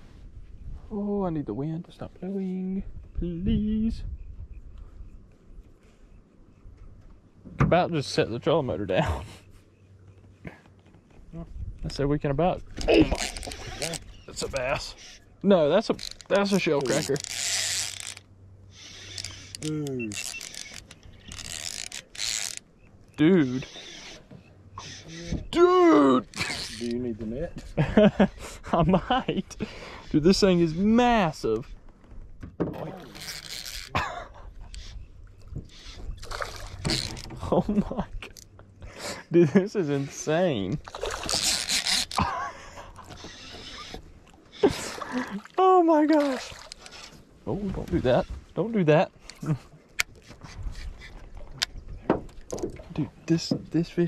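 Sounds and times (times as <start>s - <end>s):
fishing reel ratcheting buzz: 13.1s - 15.2s, 16.0s - 22.7s, 23.4s - 24.2s, 26.3s - 26.9s, 33.1s - 34.0s, 35.7s - 37.3s, 41.2s - 42.3s, 43.1s - 44.0s
fish splashing in water: 36.0s - 37.1s.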